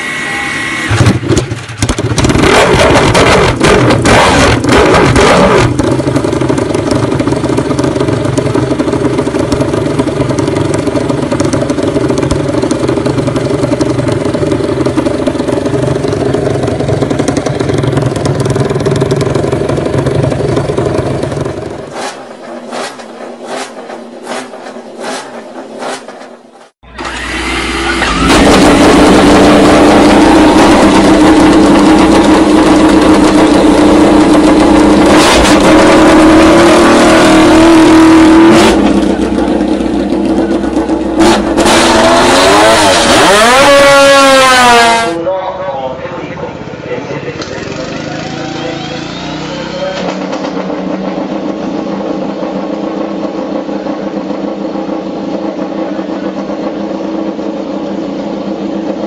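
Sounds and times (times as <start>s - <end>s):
motorcycle engine running loudly: 0.0s - 59.0s.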